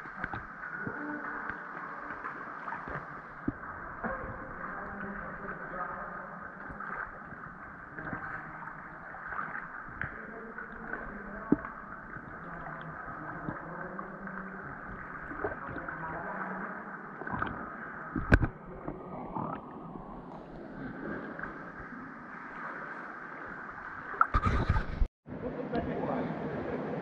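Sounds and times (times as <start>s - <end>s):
water sloshing and gurgling: 0.0s - 25.1s.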